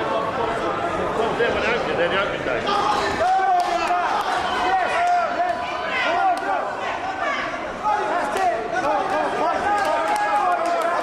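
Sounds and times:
people shouting: 2.6 - 11.0.

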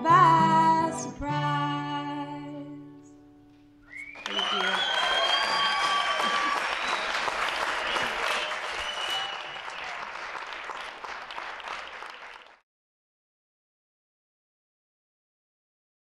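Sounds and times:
high whoops: 3.9 - 10.1
audience applauding and cheering: 3.9 - 12.6.

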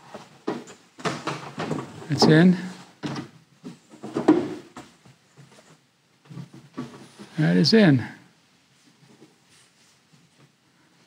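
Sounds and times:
boards scraping and knocking: 0.0 - 7.4.

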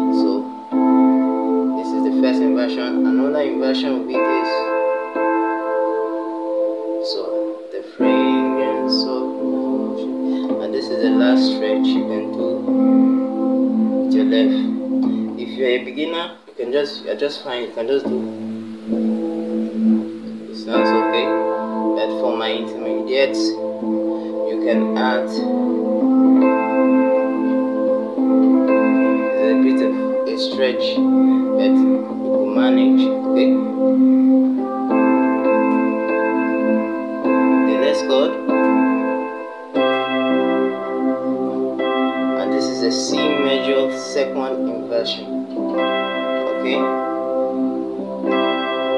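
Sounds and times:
keyboard chord ringing: 0.0 - 48.9.

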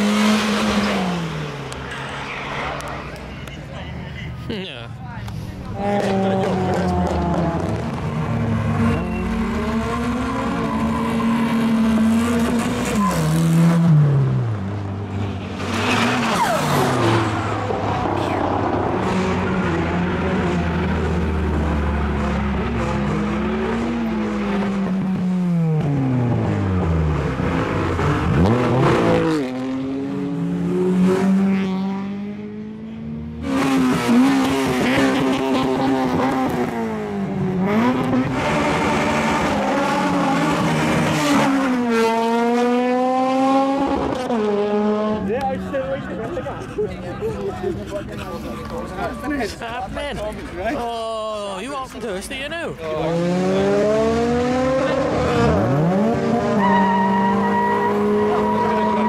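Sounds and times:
car engines revving: 0.0 - 59.0
tyre squeal: 8.9 - 9.7, 12.8 - 13.4, 15.8 - 16.9, 56.6 - 59.0.

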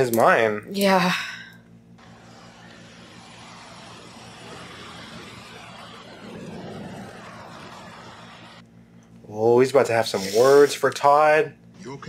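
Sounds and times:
car engine and tyres: 2.0 - 8.6.

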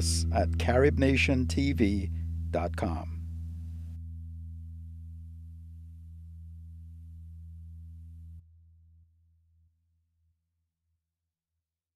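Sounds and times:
low electronic bass drone: 0.0 - 9.0.

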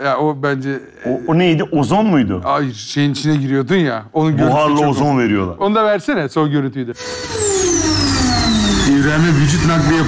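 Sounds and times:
machine rushing noise: 7.0 - 10.0
machine whine falling in pitch: 7.0 - 10.0.

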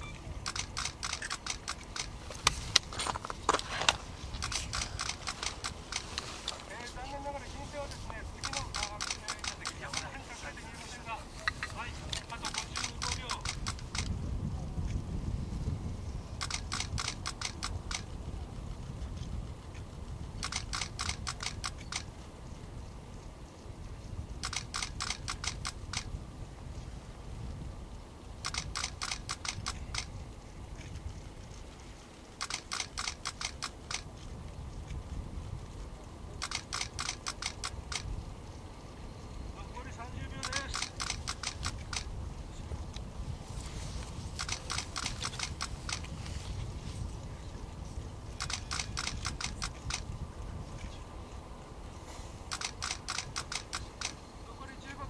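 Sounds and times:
camera shutter clicking in bursts: 0.4 - 2.9, 3.8 - 6.3, 7.9 - 10.4, 11.4 - 14.2, 16.4 - 18.3, 19.9 - 22.2, 24.4 - 26.2, 28.4 - 31.0, 32.0 - 34.3, 36.4 - 38.2, 40.3 - 42.2, 44.3 - 46.4, 48.3 - 50.2, 52.4 - 54.3.

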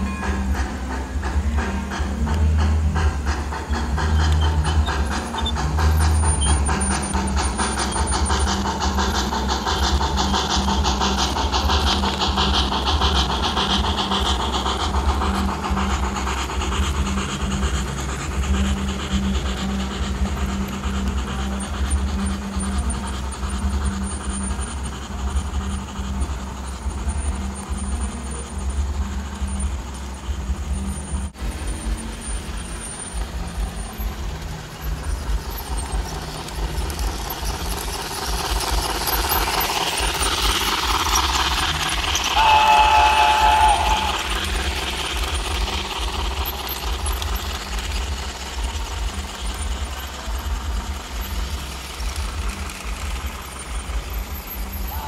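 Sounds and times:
model train rumbling on rails: 0.0 - 55.0
train sound effects: 0.0 - 55.0
train whistle: 42.1 - 45.5.

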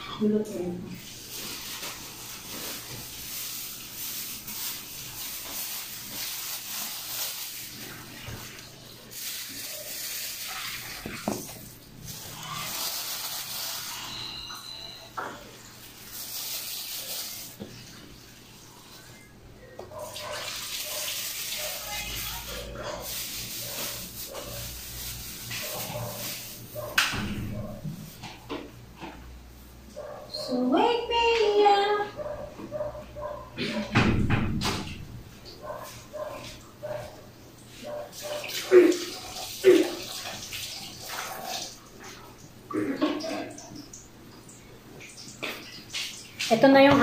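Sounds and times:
plastic bag rustling: 1.0 - 14.2, 15.7 - 17.6, 20.5 - 27.0
water running into sink: 1.0 - 14.2, 20.0 - 27.3, 38.2 - 47.0.

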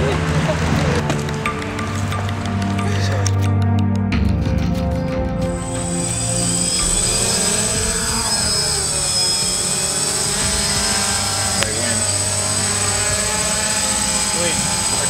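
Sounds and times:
drone rotors whining: 0.0 - 3.3, 5.5 - 15.0
background music: 0.0 - 15.0.

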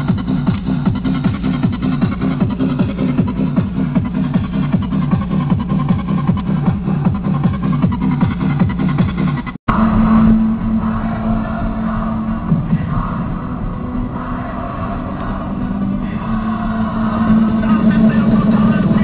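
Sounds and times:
car engine drone: 0.0 - 19.0
road noise: 0.0 - 19.0.

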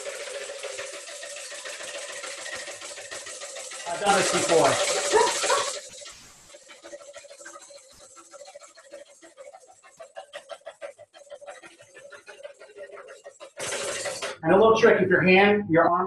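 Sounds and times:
whisk beating in a bowl: 0.0 - 14.5.

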